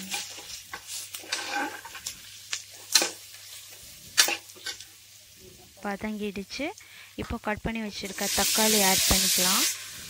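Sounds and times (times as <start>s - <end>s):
quiet sizzle of frying: 0.0s - 10.0s
metal ladle scraping pot: 1.2s - 2.0s.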